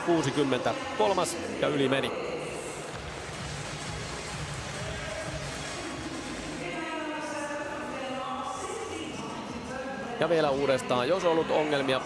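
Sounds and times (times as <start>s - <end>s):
indoor arena background noise: 0.0s - 12.0s
music: 2.6s - 9.0s.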